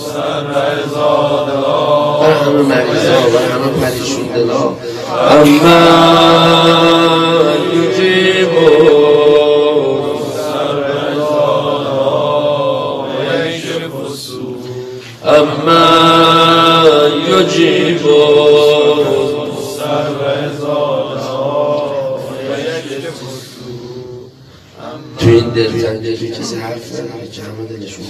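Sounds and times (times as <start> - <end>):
man chanting religious lament: 0.0 - 28.0.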